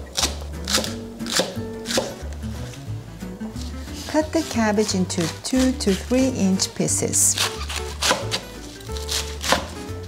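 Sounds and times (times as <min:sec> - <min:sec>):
soft background music: 0:00.0 - 0:10.0
knife slicing onion on cutting board: 0:00.1 - 0:02.8, 0:03.6 - 0:10.0.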